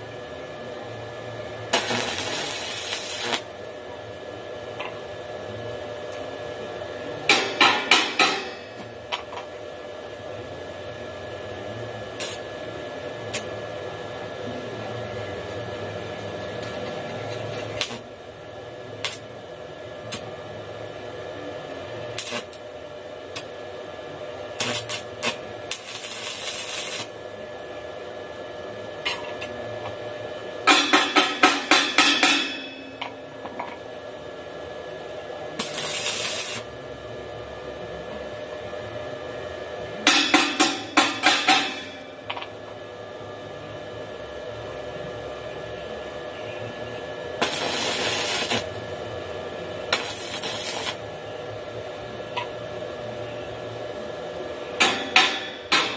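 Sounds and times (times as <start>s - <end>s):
steady hum: 0.0s - 55.9s
welding arc crackling: 1.5s - 3.7s, 12.0s - 12.5s, 13.3s - 13.6s, 17.3s - 18.1s, 18.9s - 19.4s, 20.0s - 20.3s, 22.0s - 23.6s, 24.4s - 27.3s, 30.7s - 33.2s, 35.5s - 36.8s, 40.1s - 42.4s, 47.4s - 49.1s, 49.8s - 51.2s, 54.8s - 55.9s.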